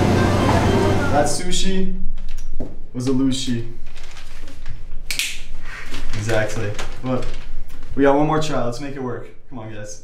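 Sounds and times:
newspaper pages rustling: 3.8 - 8.2.

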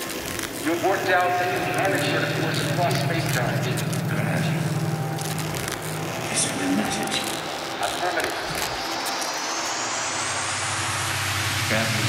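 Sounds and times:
electronic dance music: 0.0 - 12.0
rising pitch sweep: 0.0 - 12.0
deep bass: 1.3 - 7.8.

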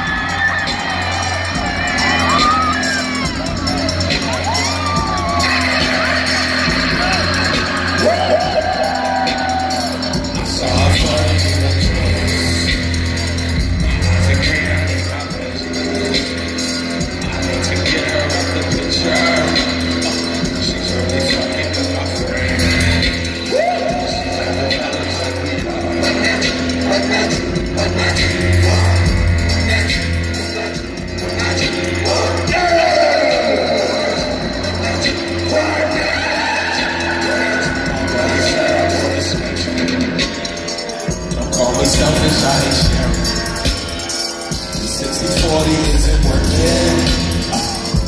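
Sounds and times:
heavy bass line: 0.0 - 48.0.

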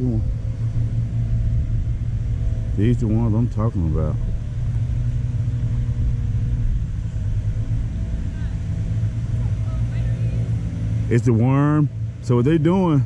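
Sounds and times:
constant hum: 0.0 - 13.0
low rumble: 0.0 - 13.0.

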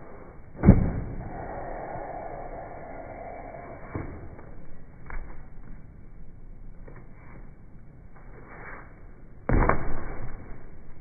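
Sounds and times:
rush of noise: 0.2 - 5.8.

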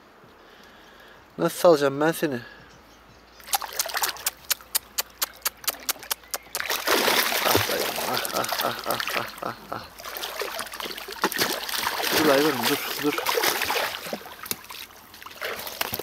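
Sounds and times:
fish splashing in water: 3.4 - 16.0.

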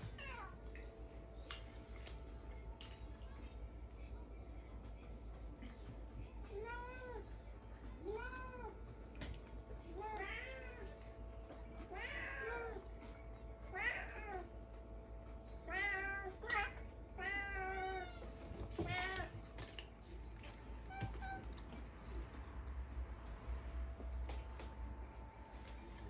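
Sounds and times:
cats meowing: 9.9 - 11.0, 11.7 - 13.0, 13.6 - 14.6, 15.6 - 19.6, 20.5 - 21.9.

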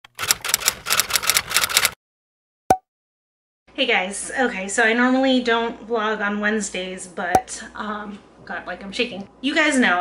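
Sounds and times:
typewriter keys clacking: 0.1 - 2.0.

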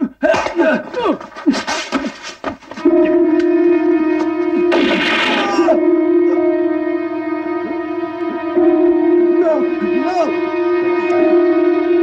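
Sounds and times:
low synthesizer note: 2.8 - 12.0
gunshot cracks: 4.7 - 5.6.

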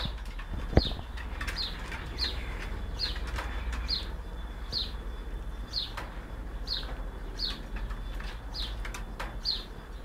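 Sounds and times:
bird calling with high notes: 0.7 - 10.0.

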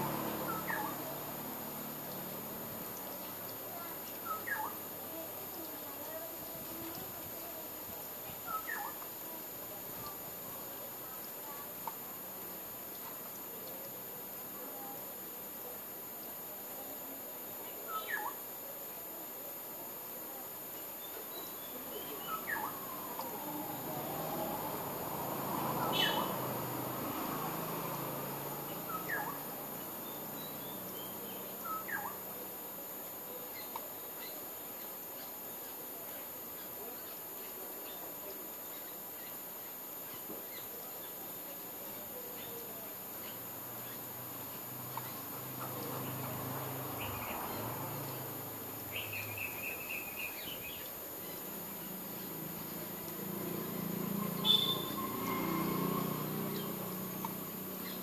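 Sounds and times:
high insect drone: 0.0 - 58.0
steady background noise: 0.0 - 58.0
bird chirps sweeping downward: 54.3 - 55.4.

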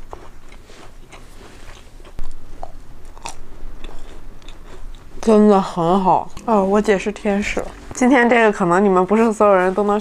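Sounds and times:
person chewing crunchy food: 0.0 - 5.2.

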